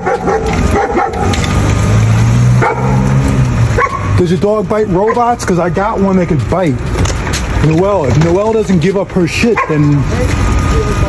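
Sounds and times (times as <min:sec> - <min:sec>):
dog barking: 0:00.0 - 0:01.4, 0:02.6 - 0:04.2, 0:05.0 - 0:05.4, 0:09.4 - 0:09.9.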